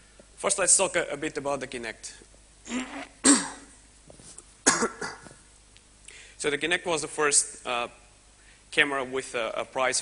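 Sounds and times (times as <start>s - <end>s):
man coughing: 3.2s - 3.7s, 4.6s - 5.4s.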